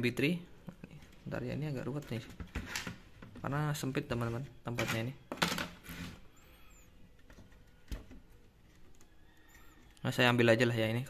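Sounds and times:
cables being handled: 0:00.7 - 0:10.2.

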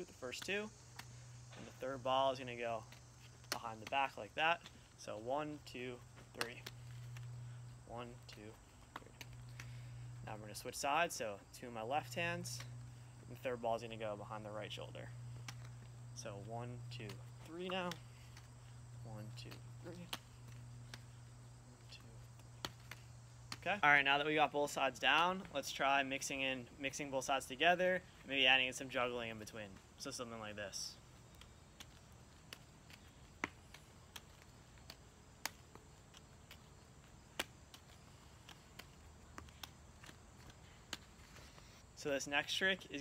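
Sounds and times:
faint low hum: 0:00.0 - 0:43.0
juggling balls smacking into hands: 0:00.1 - 0:10.8, 0:13.8 - 0:15.9, 0:16.7 - 0:23.8, 0:31.2 - 0:42.0.

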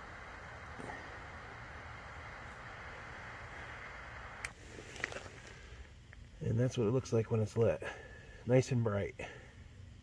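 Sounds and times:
lighter flame hissing: 0:00.0 - 0:06.2
faint crackles: 0:00.0 - 0:08.0.

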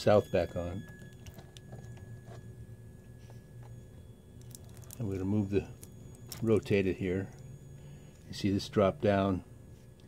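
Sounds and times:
faint high whine: 0:00.0 - 0:10.0
low electrical hum: 0:00.0 - 0:10.0.

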